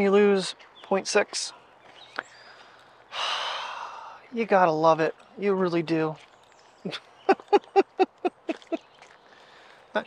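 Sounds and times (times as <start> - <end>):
man sighing: 3.1 - 4.2.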